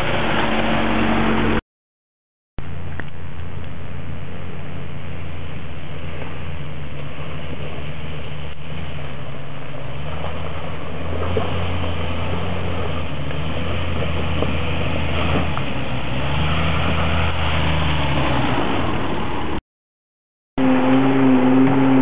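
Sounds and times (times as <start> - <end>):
vehicle engine at low revs: 0.0 - 1.6, 2.6 - 19.6, 20.6 - 22.0.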